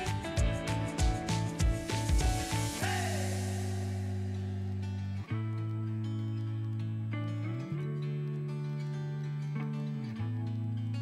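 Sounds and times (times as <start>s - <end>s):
drum beat with chords: 0.0s - 4.6s
cymbal crash: 0.0s - 4.8s.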